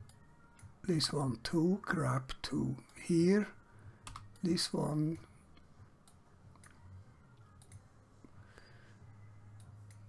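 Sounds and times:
computer mouse clicks: 0:04.0 - 0:04.5, 0:07.5 - 0:07.8.

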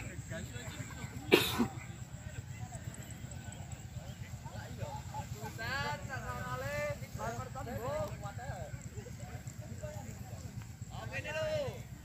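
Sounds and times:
murmur of distant voices: 0:00.0 - 0:12.0
loud cough: 0:01.1 - 0:01.9.

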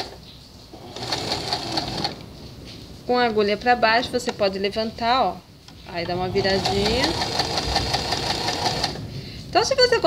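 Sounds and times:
sewing machine running: 0:00.8 - 0:02.2, 0:06.4 - 0:09.0.

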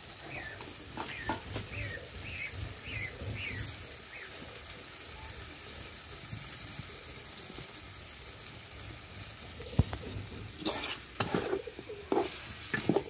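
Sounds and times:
meat sizzling in a wok: 0:00.0 - 0:13.0
metal spatula scraping pan: 0:10.6 - 0:13.0.

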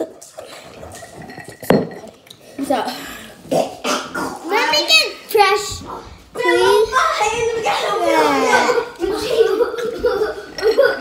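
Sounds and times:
child's voice: 0:04.4 - 0:09.8.

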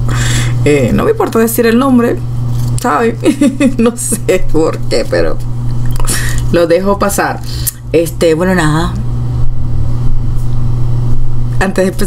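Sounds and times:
loud low hum: 0:00.0 - 0:12.0.

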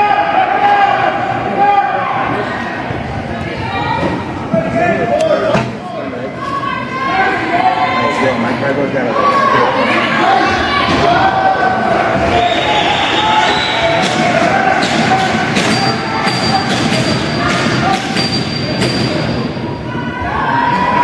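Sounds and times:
players and spectators shouting: 0:00.0 - 0:21.0.

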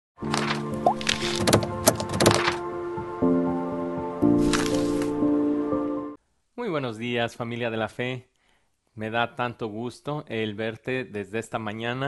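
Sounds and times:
crackling swishing effects: 0:04.2 - 0:05.2.

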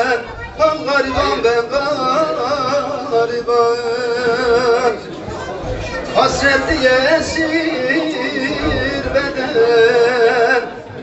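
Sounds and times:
man singing folk song: 0:00.0 - 0:05.1, 0:06.0 - 0:10.9
people chattering: 0:00.0 - 0:11.0.

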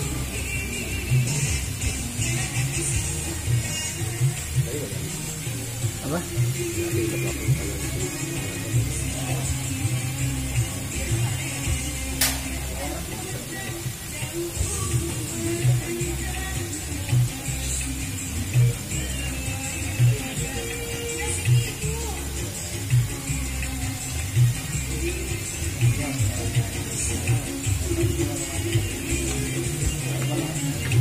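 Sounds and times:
music with bass beat and voices: 0:00.0 - 0:31.0.

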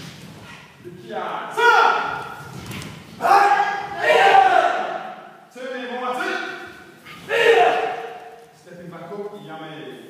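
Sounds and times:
person shouting in echoing hall: 0:01.4 - 0:02.4, 0:03.2 - 0:08.4.

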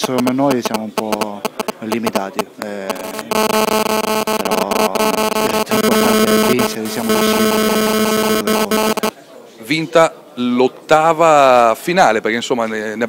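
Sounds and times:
loud electronic interference buzz: 0:00.0 - 0:09.1.

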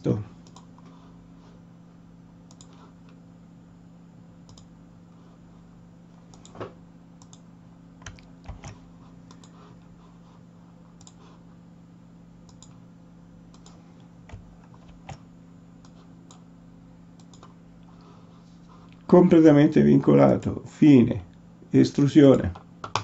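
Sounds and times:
steady low hum: 0:00.0 - 0:23.0
computer mouse clicks: 0:00.4 - 0:00.9, 0:02.5 - 0:03.2, 0:04.4 - 0:04.7, 0:06.3 - 0:06.6, 0:07.2 - 0:07.4, 0:08.0 - 0:09.6, 0:11.0 - 0:11.2, 0:12.4 - 0:12.8, 0:13.5 - 0:15.2, 0:17.2 - 0:17.6
keystrokes: 0:04.5 - 0:04.7, 0:07.2 - 0:07.4, 0:08.0 - 0:09.6.

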